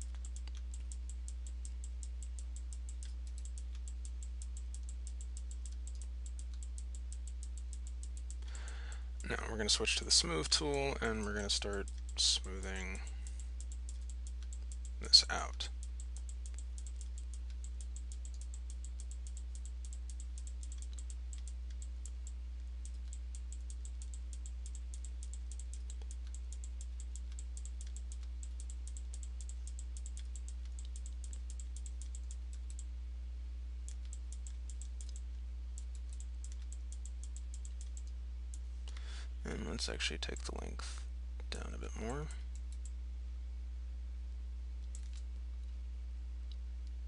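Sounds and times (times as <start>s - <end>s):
computer mouse clicking: 0.0s - 9.4s, 13.0s - 32.9s, 33.8s - 39.1s, 44.8s - 45.7s
low electrical hum: 0.0s - 47.0s.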